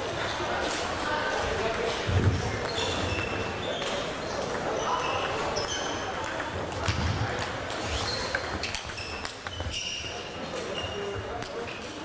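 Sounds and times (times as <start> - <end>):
table tennis balls clicking: 0.2 - 12.0.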